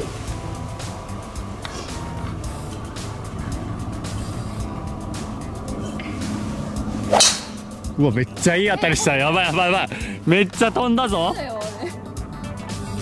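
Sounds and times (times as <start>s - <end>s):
background music: 0.0s - 13.0s
golf club whoosh: 3.0s - 8.0s
club striking golf ball: 7.0s - 7.8s.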